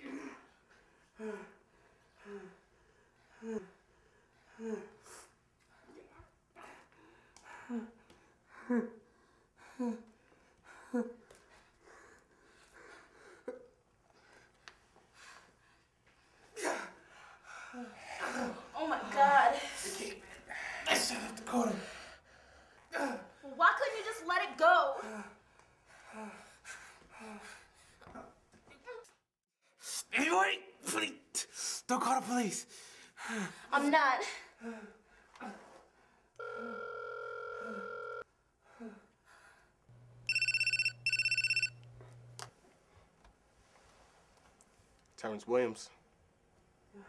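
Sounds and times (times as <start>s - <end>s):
electronic phone ringer trilling: 36.4s - 38.2s, 40.3s - 41.8s
ringback tone: 40.3s - 41.8s.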